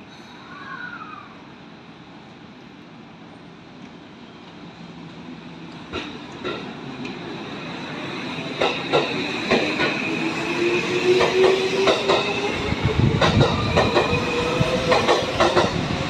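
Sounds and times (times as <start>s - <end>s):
electric train running: 7.6s - 16.0s
wheels clacking over rail joints: 14.9s - 15.8s.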